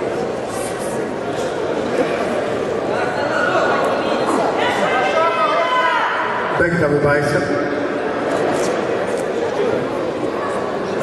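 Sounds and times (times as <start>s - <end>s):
spectator crowd calling out and chattering: 0.0s - 11.0s.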